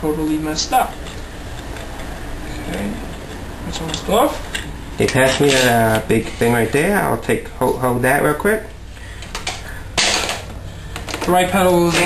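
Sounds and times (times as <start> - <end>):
metal bike parts clicking: 3.1 - 6.0.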